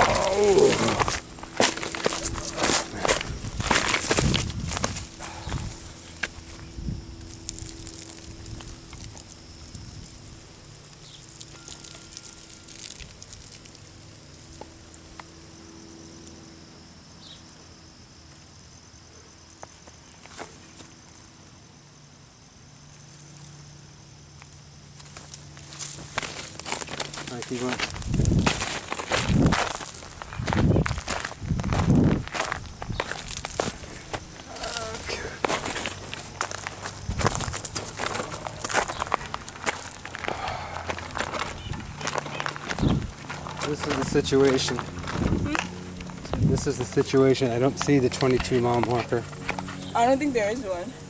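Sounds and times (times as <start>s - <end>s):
footsteps on brush and gravel: 0.0s - 15.3s, 24.4s - 50.8s.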